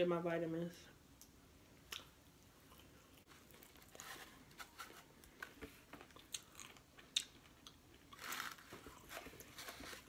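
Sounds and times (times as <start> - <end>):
chewing crispy fried food: 5.5 - 10.0.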